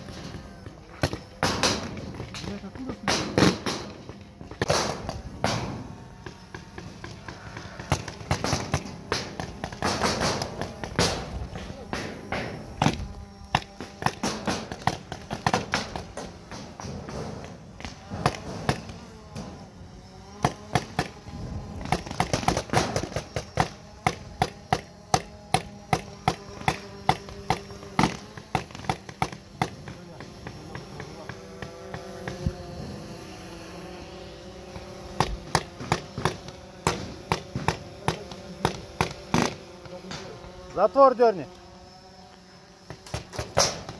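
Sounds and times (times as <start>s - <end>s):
paintball markers firing: 0.0s - 19.7s, 20.3s - 33.6s, 34.2s - 43.9s.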